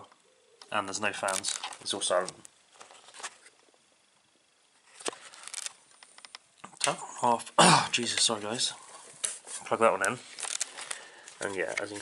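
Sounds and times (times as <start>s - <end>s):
small clicks and rattles of handling: 1.2s - 3.3s, 5.0s - 7.0s, 10.0s - 12.0s.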